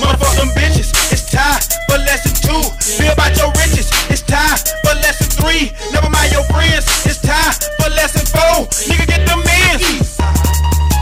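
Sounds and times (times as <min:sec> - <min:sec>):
hip hop vocals over beat: 0:00.0 - 0:11.0.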